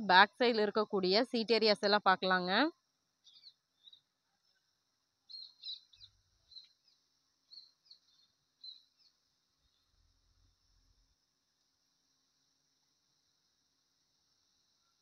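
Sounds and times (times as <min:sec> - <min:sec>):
faint bird chirps: 0:03.2 - 0:10.0.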